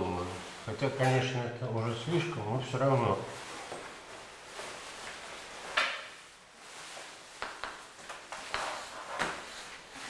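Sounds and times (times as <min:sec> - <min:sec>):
chalk tapping on blackboard: 0:08.4 - 0:09.0.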